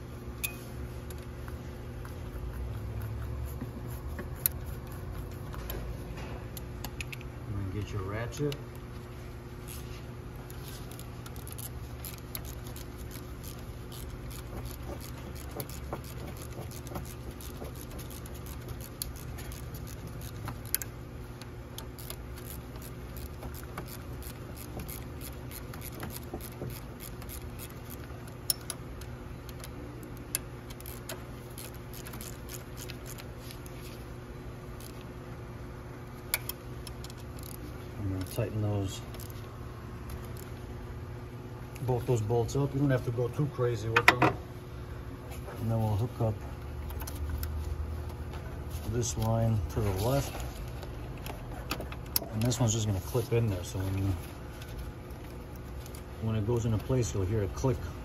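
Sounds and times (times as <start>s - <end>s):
steady low hum: 0.0s - 58.0s
ratchet wrench clicking: 10.9s - 20.9s, 21.8s - 28.8s, 30.3s - 33.2s, 36.3s - 37.6s.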